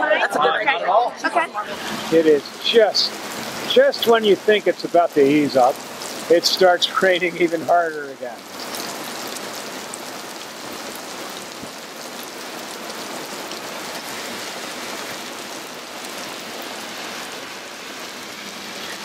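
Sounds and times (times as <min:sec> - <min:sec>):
heavy rain on a street: 0:00.0 - 0:19.0.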